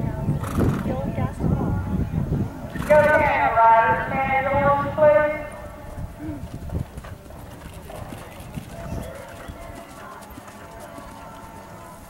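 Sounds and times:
quiet voices: 0.0 - 6.6
horse hoofbeats on dirt: 6.4 - 12.0.

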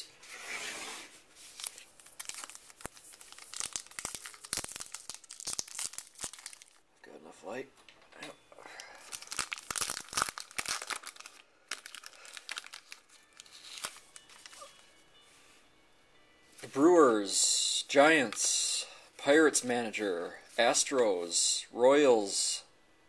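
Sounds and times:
wrapper crinkling and ripping: 1.4 - 6.8, 8.8 - 14.8.

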